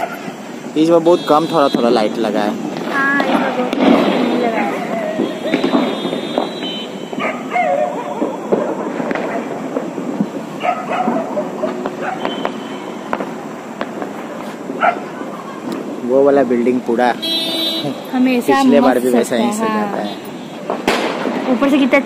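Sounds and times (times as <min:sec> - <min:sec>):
firecrackers banging: 0:00.0 - 0:22.0.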